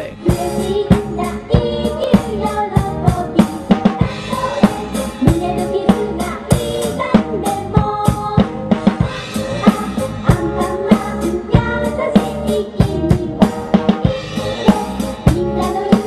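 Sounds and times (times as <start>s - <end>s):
drum kit rock beat: 0.0s - 16.0s
melodic backing music: 0.0s - 16.0s.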